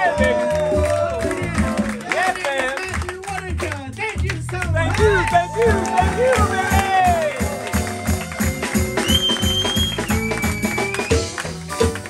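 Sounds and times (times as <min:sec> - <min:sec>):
plucked electric bass: 0:00.0 - 0:02.1, 0:02.9 - 0:12.0
hand percussion: 0:00.0 - 0:03.9, 0:04.8 - 0:12.0.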